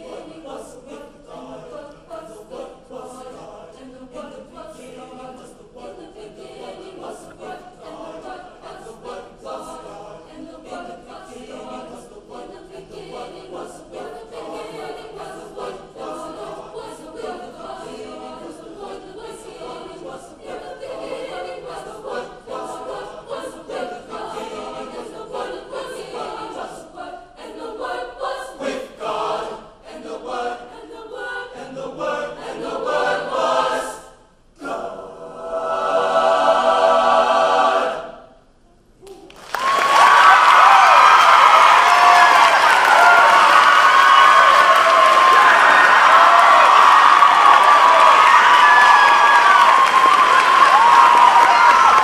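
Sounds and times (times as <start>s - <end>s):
mixed choir singing in parts: 0.0s - 38.4s, 39.6s - 52.0s.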